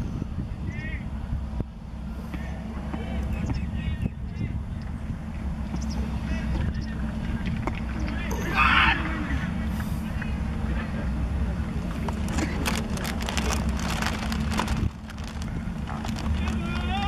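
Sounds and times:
wind rumbling on microphone: 0:00.0 - 0:08.2, 0:11.7 - 0:17.0.

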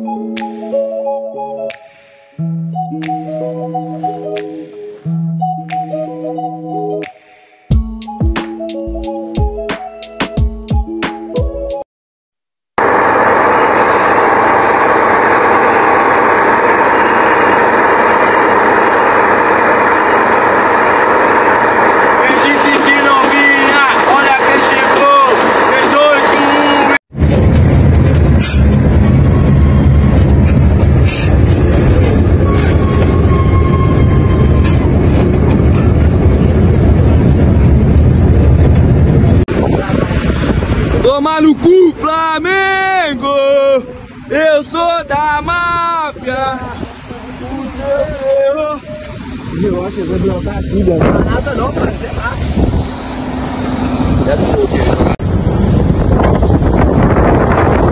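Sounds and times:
road noise: 0:12.8 - 0:57.9
wind rushing through bus window: 0:27.1 - 0:42.2, 0:45.1 - 0:57.9.

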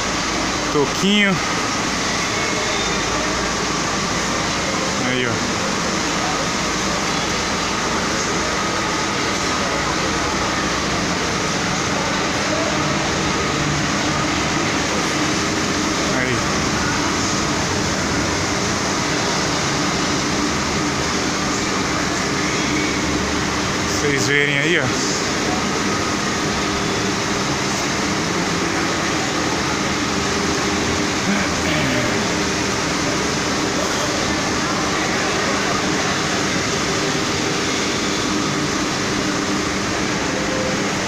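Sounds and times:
air-conditioning units running: 0:00.0 - 0:41.0
diesel bus engines idling: 0:00.0 - 0:41.0.

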